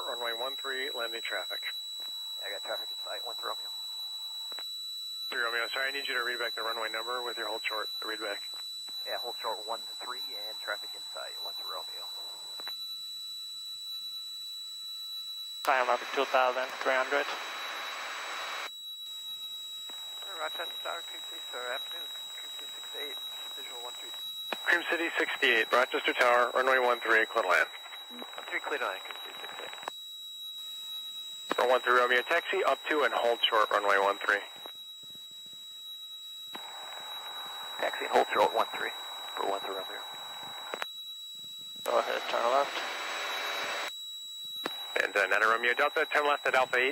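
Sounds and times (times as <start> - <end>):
voice over radio: 0.0 - 1.7, 2.4 - 3.6, 5.3 - 8.4, 9.1 - 12.4, 15.7 - 17.4, 20.3 - 24.1, 24.7 - 29.8, 31.5 - 34.5, 37.8 - 40.0, 41.9 - 42.9, 45.0 - 46.9
radio hiss: 5.3 - 8.4, 15.7 - 18.7, 20.3 - 29.9, 31.5 - 34.6, 36.6 - 40.8, 41.9 - 43.9, 44.7 - 46.9
high-pitched electrical whine: 5.3 - 12.9, 15.6 - 30.0, 30.6 - 35.7, 36.5 - 46.9
faint second steady tone: 15.6 - 18.7, 19.9 - 30.0, 30.6 - 46.9.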